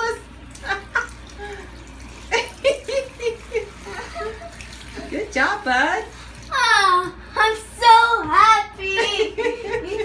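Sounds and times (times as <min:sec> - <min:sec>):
child making sing-song sounds: 0:06.5 - 0:08.8.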